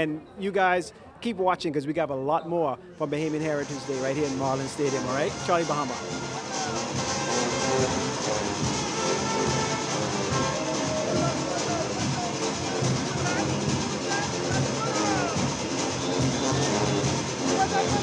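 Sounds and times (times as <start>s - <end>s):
brass horns: 3.1s - 18.0s
band playing: 3.3s - 18.0s
voices shouting: 6.0s - 18.0s.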